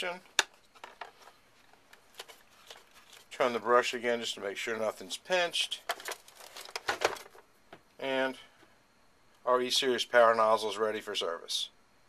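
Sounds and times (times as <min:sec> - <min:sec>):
hands handling plastic housing: 0:05.8 - 0:07.8.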